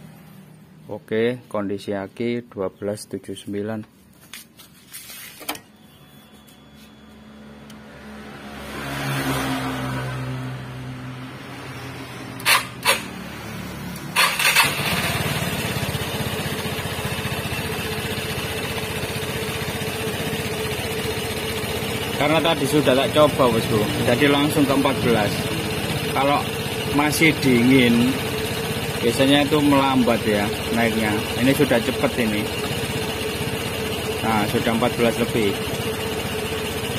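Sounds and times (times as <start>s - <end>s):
scooter electric starter cranking: 12.4s - 13.2s, 13.9s - 36.9s
scooter engine idling: 12.4s - 36.9s.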